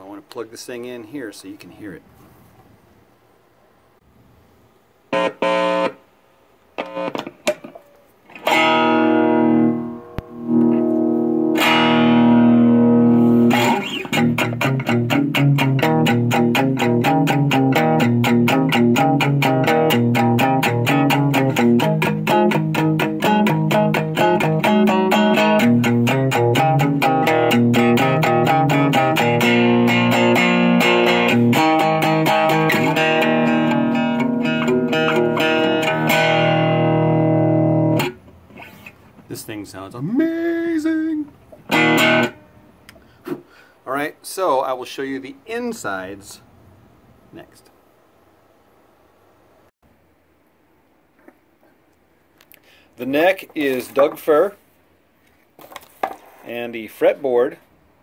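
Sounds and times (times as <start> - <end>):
amplified cigar box guitar: 5.1 - 6.1, 6.8 - 43.4.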